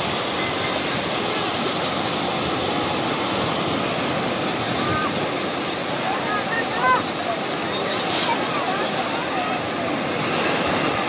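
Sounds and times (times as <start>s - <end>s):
sea surf breaking: 0.0s - 11.0s
faint voices calling out: 4.5s - 10.2s.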